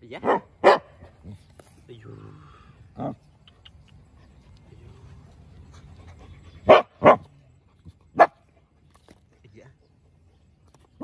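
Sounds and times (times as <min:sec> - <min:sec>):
young dog barking: 0:00.2 - 0:01.0, 0:06.6 - 0:07.3, 0:08.2 - 0:08.4.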